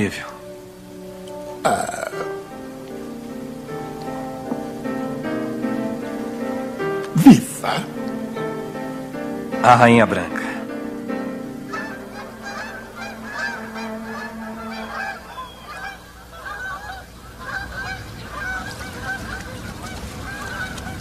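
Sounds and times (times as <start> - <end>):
geese honking in flight: 7.8 - 21.0.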